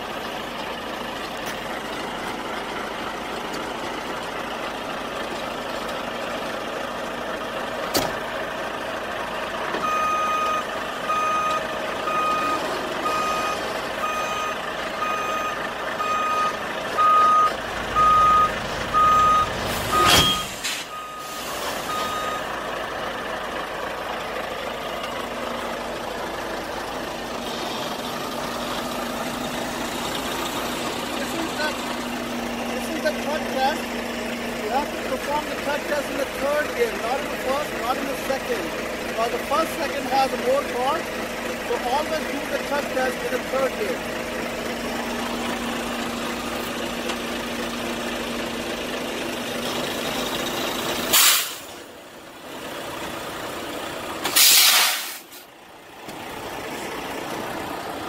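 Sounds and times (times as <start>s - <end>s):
truck engine running: 0.0s - 58.0s
back-up alarm beeping: 9.8s - 22.5s.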